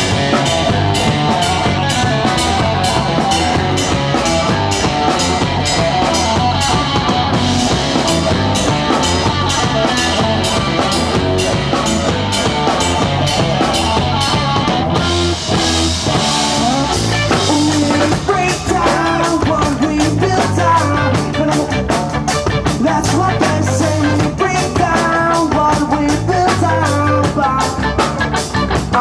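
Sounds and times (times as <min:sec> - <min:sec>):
drum kit beat: 0:00.0 - 0:29.0
electric bass: 0:00.0 - 0:29.0
electric guitar: 0:00.0 - 0:29.0.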